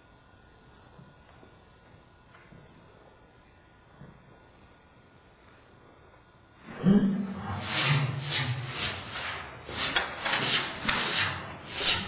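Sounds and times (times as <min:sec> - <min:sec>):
deep drawn-out vocal sound: 0:06.6 - 0:08.7.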